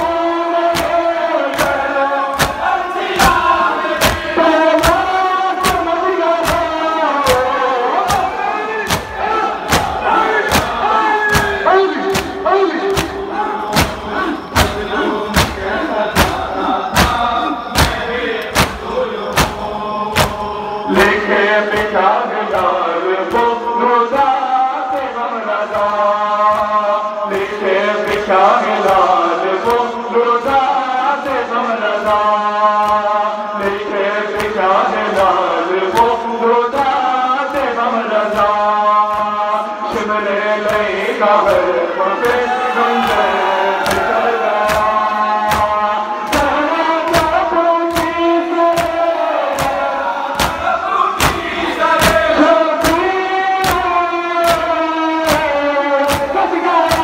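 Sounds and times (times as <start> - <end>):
men chanting in chorus: 0.0 - 57.0
hands striking chests: 0.7 - 20.6, 43.8 - 57.0.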